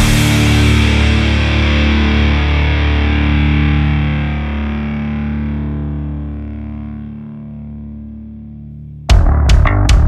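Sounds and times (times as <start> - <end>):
distorted electric guitar chord: 0.0 - 10.0
low bass note: 0.0 - 10.0.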